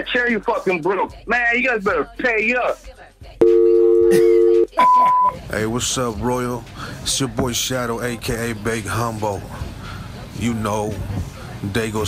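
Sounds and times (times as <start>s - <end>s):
short high beep: 3.4s - 5.4s
two-note telephone tone: 3.4s - 5.4s.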